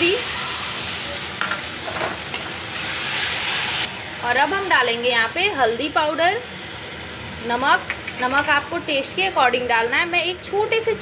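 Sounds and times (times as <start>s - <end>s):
tomato puree sizzling in oil: 0.0s - 11.0s.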